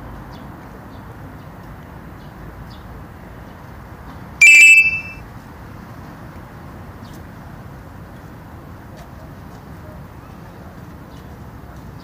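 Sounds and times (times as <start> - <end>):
short electronic beep: 4.4 - 5.2.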